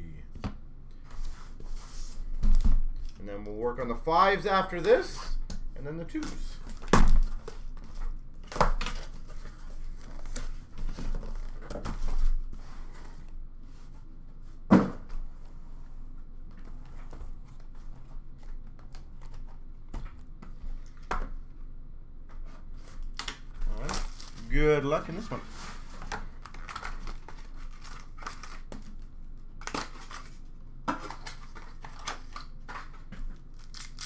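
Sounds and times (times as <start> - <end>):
cardboard rustling and scraping: 8.9 - 14.6, 23.7 - 28.6.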